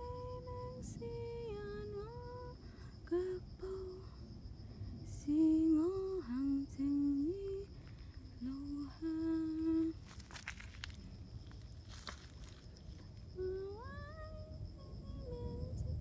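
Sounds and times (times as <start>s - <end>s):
woman humming: 13.3s - 16.0s.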